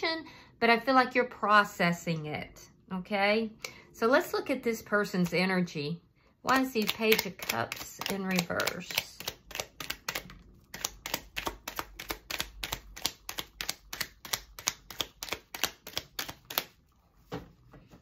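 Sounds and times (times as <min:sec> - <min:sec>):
cards being shuffled: 0:06.7 - 0:16.8.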